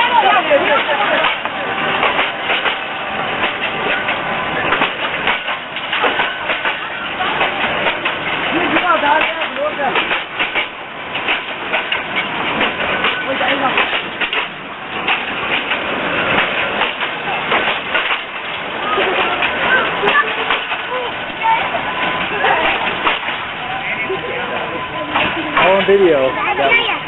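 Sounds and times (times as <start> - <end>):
people's voices: 0.0 - 27.0
train wheels clacking on rails: 0.0 - 27.0.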